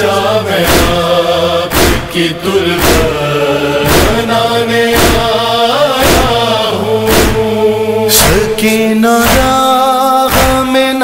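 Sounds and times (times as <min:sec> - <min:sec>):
chorus chanting held notes: 0:00.0 - 0:10.7
chest-beating thumps: 0:00.6 - 0:08.6, 0:09.2 - 0:09.7, 0:10.3 - 0:10.8.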